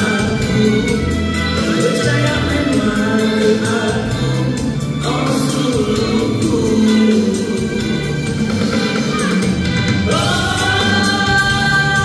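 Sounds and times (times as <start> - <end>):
man singing through microphone: 0.0 - 9.0, 10.0 - 12.0
backing music: 0.0 - 12.0.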